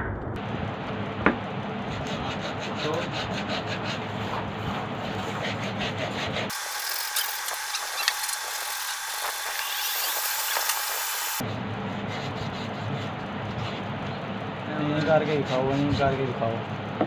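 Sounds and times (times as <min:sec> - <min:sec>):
sandpaper rubbing on wood: 0:01.9 - 0:11.4.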